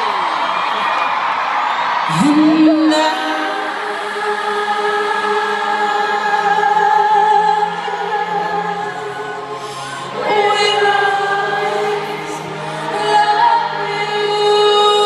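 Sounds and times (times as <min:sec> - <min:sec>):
person singing a ballad: 0:02.0 - 0:15.0.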